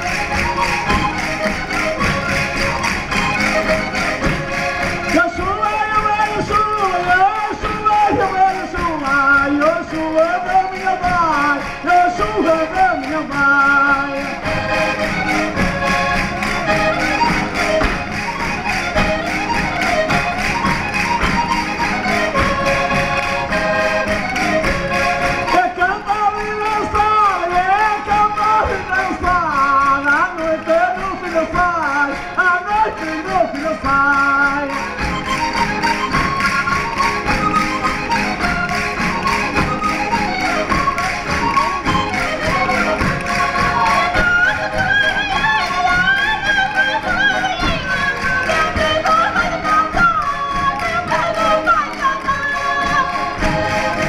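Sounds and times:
feet stamping on wooden stage: 0:00.0 - 0:25.8, 0:26.8 - 0:54.0
folk band with accordions: 0:00.0 - 0:54.0.

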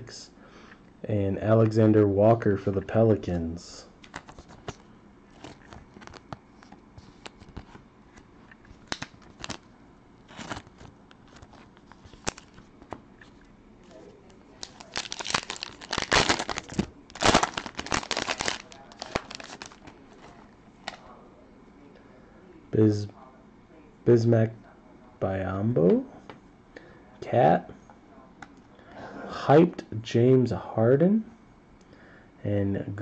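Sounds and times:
foil pack crinkling and tearing: 0:08.8 - 0:09.6, 0:10.3 - 0:12.6, 0:14.5 - 0:21.0.

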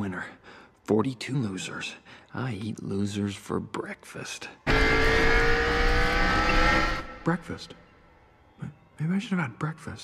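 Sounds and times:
race car engine running: 0:04.7 - 0:07.2.

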